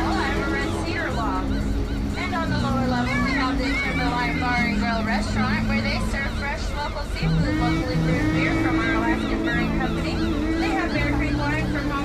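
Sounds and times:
people's voices exclaiming: 0:00.0 - 0:12.0
steady low hum: 0:00.0 - 0:12.0.

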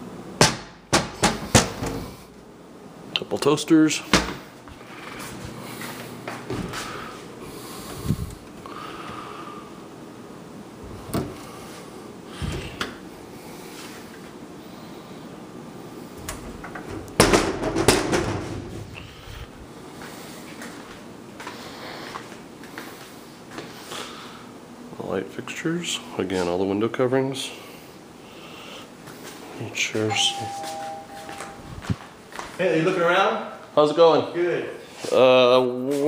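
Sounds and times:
cabinet doors knocking shut: 0:00.4 - 0:02.0, 0:16.5 - 0:18.9
sharp knocks: 0:16.8 - 0:18.8.

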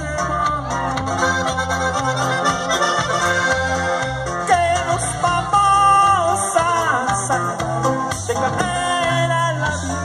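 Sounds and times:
bass line: 0:00.0 - 0:10.0
drums: 0:00.0 - 0:10.0
lead melody: 0:00.0 - 0:10.0.

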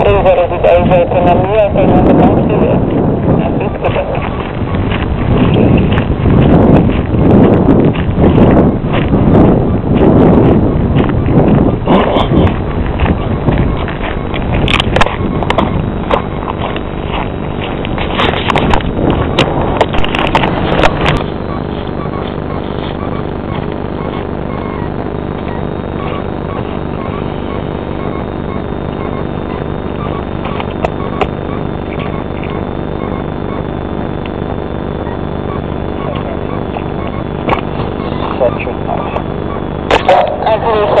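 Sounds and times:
bursts of rough noise: 0:00.0 - 0:41.0
mechanical drone of fixed tones: 0:00.0 - 0:41.0.

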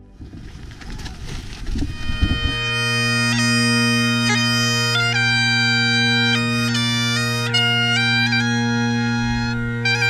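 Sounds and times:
bagpipes drone and chanter: 0:01.8 - 0:10.0.

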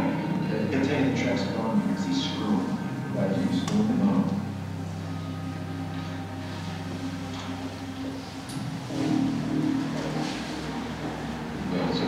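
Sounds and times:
sustained low music notes: 0:00.0 - 0:12.0.

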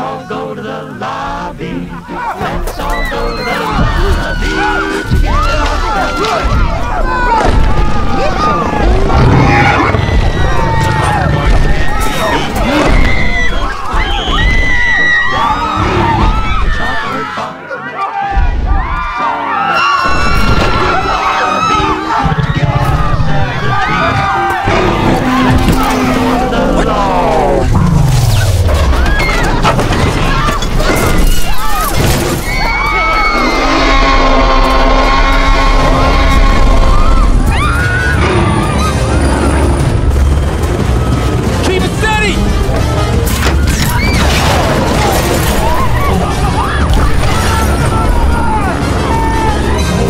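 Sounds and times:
crowd shouting and screaming: 0:00.0 - 0:50.0
action film music: 0:01.0 - 0:17.5, 0:20.0 - 0:50.0
high-pitched shrieks: 0:32.4 - 0:39.8
orchestral score: 0:32.5 - 0:50.0.

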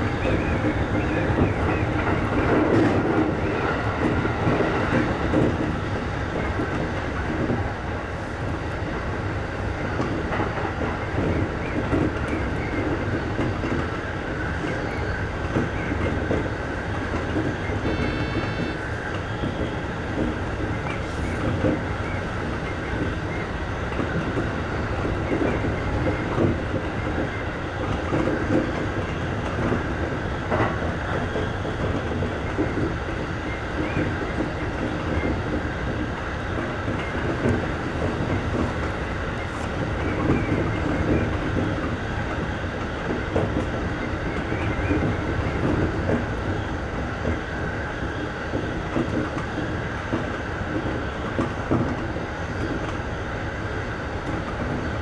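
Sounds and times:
rail joint clicks: 0:00.0 - 0:55.0
train wheels rumbling on rail: 0:00.0 - 0:55.0.

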